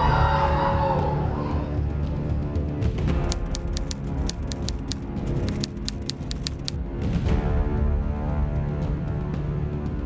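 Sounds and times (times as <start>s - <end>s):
sombre background music: 0.0s - 10.0s
typewriter key clicks: 3.2s - 6.8s.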